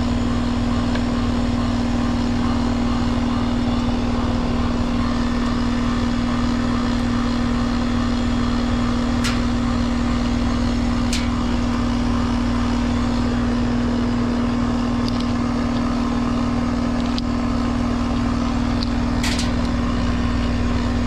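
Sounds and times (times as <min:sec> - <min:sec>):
compressor hum: 0:00.0 - 0:21.0
fan rushing: 0:00.0 - 0:21.0.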